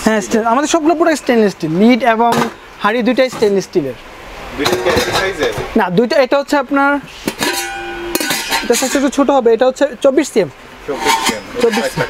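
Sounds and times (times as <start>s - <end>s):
sharp metal knock: 7.3s - 9.0s
metal lid clinking and scraping on pot: 7.3s - 9.2s, 10.9s - 12.0s.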